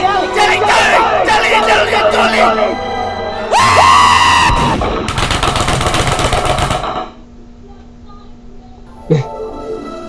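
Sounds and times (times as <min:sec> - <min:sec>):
loud held yell: 0:03.5 - 0:04.8
rapid flurry of cartoon hits: 0:04.5 - 0:07.2.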